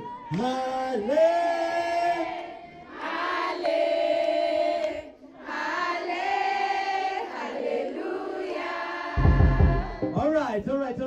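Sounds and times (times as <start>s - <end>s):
girls singing in unison: 2.0s - 10.2s.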